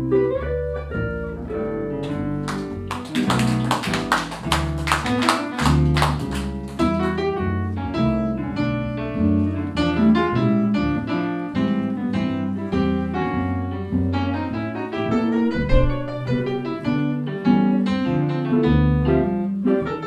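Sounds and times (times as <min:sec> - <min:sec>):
walking double bass: 0:00.0 - 0:19.6
jazz guitar: 0:00.0 - 0:20.0
piano: 0:00.0 - 0:20.0.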